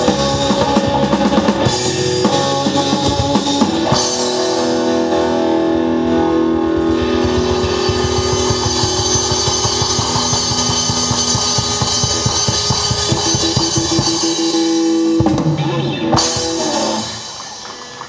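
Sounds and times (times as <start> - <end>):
held guitar and bass notes: 0.0 - 18.0
rock band playing: 0.0 - 18.0
fast drum hits: 6.8 - 18.0.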